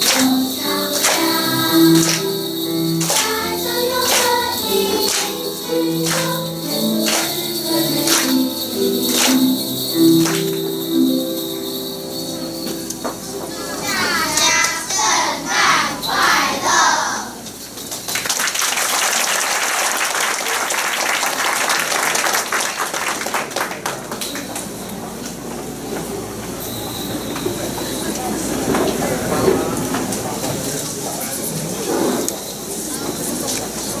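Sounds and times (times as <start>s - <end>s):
audience clapping: 0.0s - 2.4s, 3.0s - 10.6s, 17.9s - 24.7s
hubbub of many voices: 0.0s - 18.2s, 21.8s - 34.0s.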